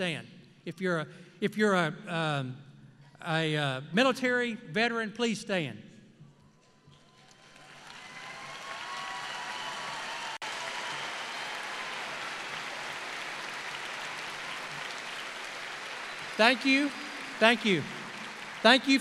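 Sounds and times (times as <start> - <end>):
large crowd applauding: 7.2 - 19.0.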